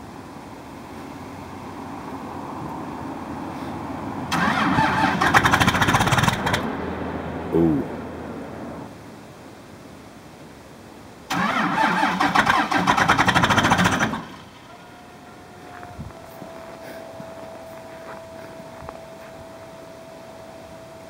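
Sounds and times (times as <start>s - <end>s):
starter cranking diesel engine: 4.3s - 6.7s, 11.3s - 14.7s.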